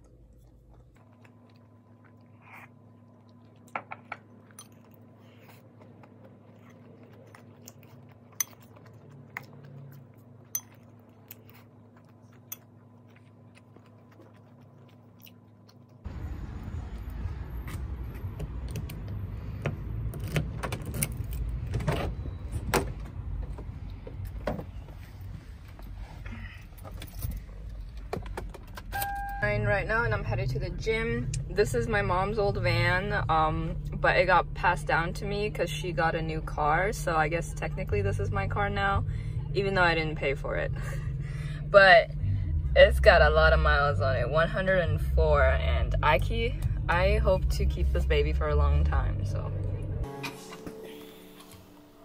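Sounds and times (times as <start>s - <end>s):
low room hum: 0.0s - 52.0s.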